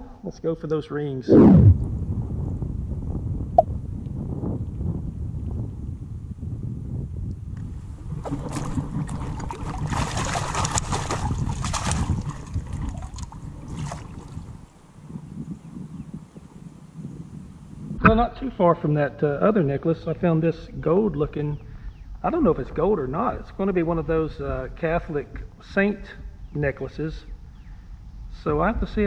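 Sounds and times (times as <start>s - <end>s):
lake water sloshing: 8.0s - 14.6s.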